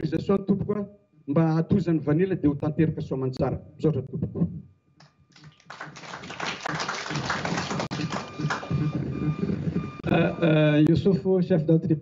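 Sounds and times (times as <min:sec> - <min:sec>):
audience applauding: 0:05.3 - 0:09.3
man's voice: 0:10.0 - 0:12.0.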